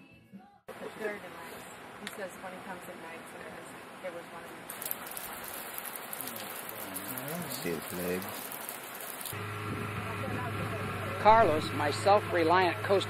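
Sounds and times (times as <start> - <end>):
water pattering and splashing: 4.7 - 9.4.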